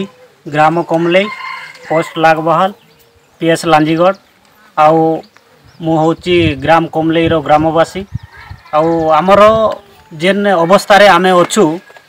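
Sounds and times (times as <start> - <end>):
man speaking: 0.0 - 11.9.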